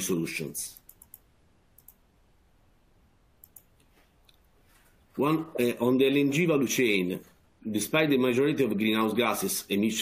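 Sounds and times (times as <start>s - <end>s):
faint clicks: 0.7s - 2.0s, 3.4s - 4.4s.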